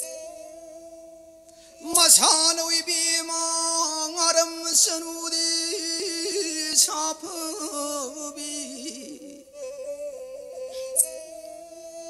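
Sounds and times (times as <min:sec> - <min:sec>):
person singing: 0:01.7 - 0:12.0.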